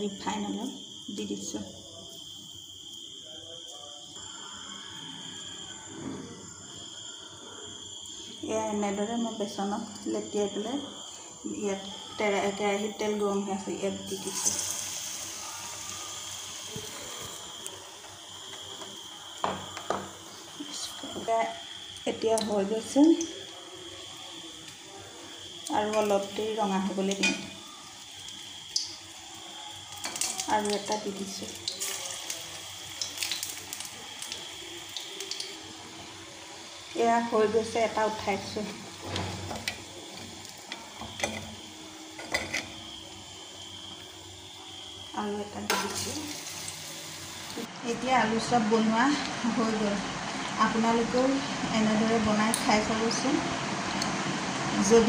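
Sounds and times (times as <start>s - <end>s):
food sizzling in hot oil: 0.0s - 3.2s, 4.0s - 55.0s
metal spoon tapping iron pan: 27.2s - 27.5s.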